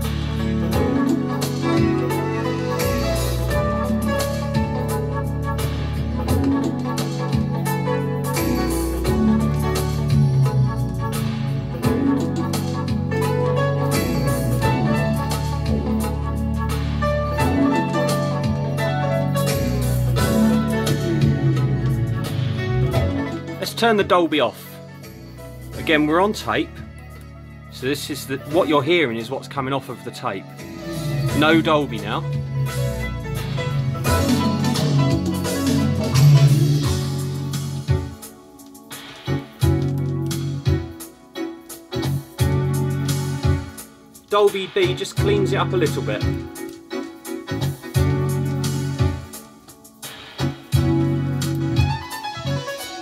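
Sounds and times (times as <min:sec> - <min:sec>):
music from cassette tape: 0:00.0 - 0:53.0.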